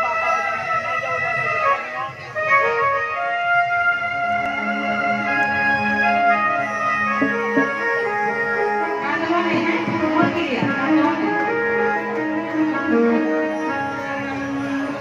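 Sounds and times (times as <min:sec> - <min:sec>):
organ-like keyboard notes: 0:00.0 - 0:15.0.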